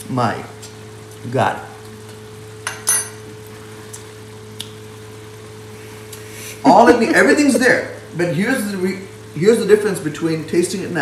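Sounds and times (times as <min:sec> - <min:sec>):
steady low hum: 0:00.0 - 0:11.0
kitchen clinks with metallic ring: 0:02.7 - 0:03.2.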